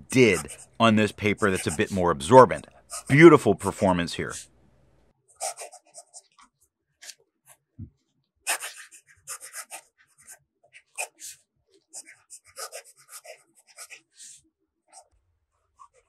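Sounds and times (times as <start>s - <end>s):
fountain pen scratching on paper: 0.2s - 0.8s, 1.4s - 2.0s, 2.7s - 3.2s, 5.4s - 6.4s, 8.5s - 16.0s.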